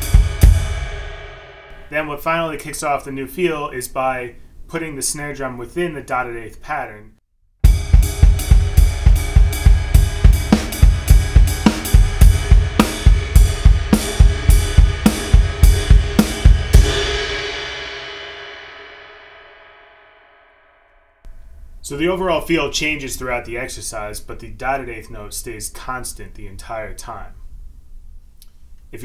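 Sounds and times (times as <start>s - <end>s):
drum kit played with sticks: 0.0s - 2.1s, 7.6s - 19.7s
cymbal ringing: 7.7s - 21.1s.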